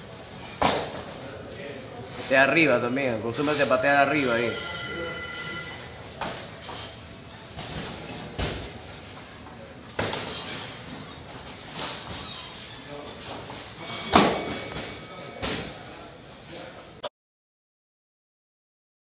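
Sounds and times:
voices in a gym hall: 0:00.0 - 0:17.1.

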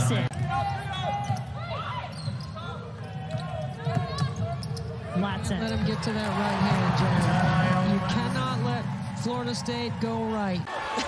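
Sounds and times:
sneaker squeaks: 0:00.9 - 0:05.8.

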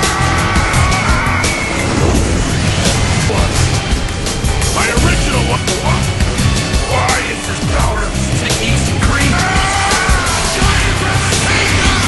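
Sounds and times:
action soundtrack music: 0:00.0 - 0:12.0
rushing whoosh: 0:00.4 - 0:07.8.

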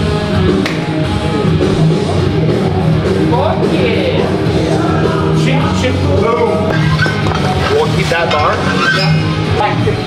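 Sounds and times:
rock music with singing: 0:00.0 - 0:10.0.

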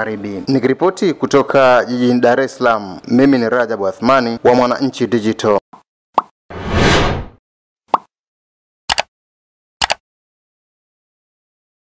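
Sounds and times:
whoosh: 0:06.5 - 0:07.4
quick double click: 0:08.9 - 0:09.1, 0:09.8 - 0:10.0.

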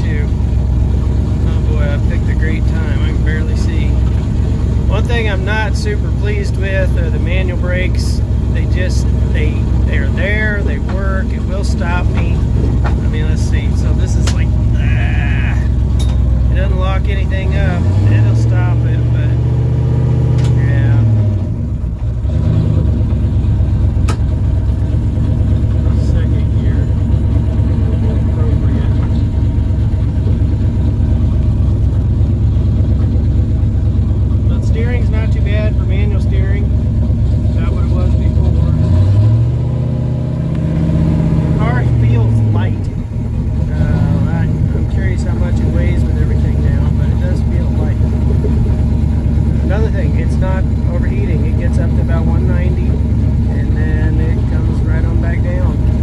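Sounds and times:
car engine accelerating: 0:00.0 - 0:56.0.

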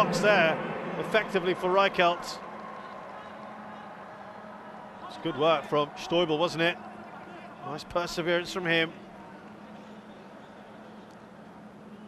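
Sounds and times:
faint stadium ambience: 0:00.0 - 0:12.0.

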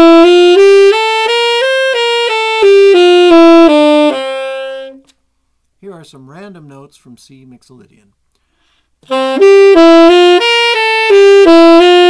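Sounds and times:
tenor saxophone playing a scale: 0:00.0 - 0:05.1, 0:09.0 - 0:12.0.

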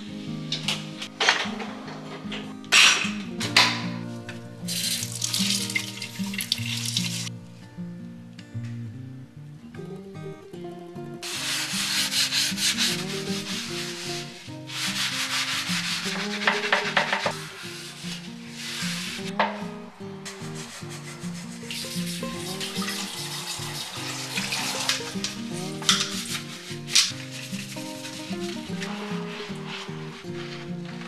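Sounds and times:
soft background music: 0:00.0 - 0:31.0
sponge scrubbing glassware: 0:04.7 - 0:07.3, 0:11.2 - 0:19.6, 0:20.2 - 0:31.0.

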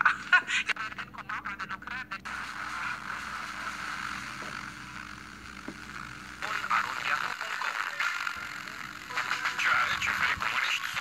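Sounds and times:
radio voice: 0:00.6 - 0:03.9, 0:06.4 - 0:11.0
radio static hiss: 0:00.6 - 0:11.0.

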